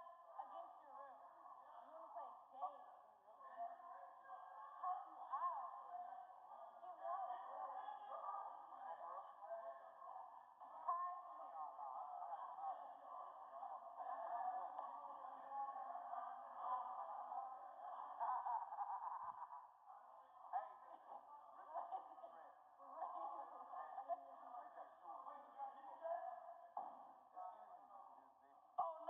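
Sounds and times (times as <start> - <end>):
muffled voices talking: 0.0 - 29.0.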